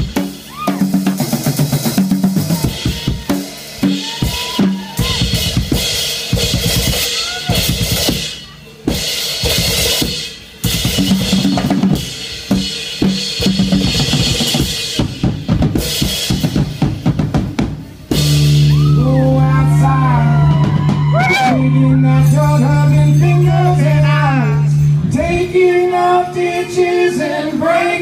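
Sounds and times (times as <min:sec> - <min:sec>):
drum kit played hard: 0:00.0 - 0:21.6.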